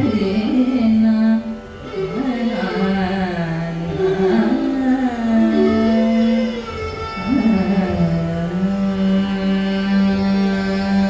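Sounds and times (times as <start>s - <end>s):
person singing: 0.0s - 6.4s
violin: 0.0s - 11.0s.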